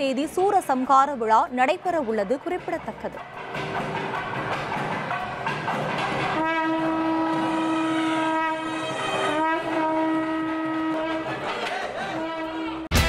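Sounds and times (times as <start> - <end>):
wind instrument long notes: 6.2 - 13.0.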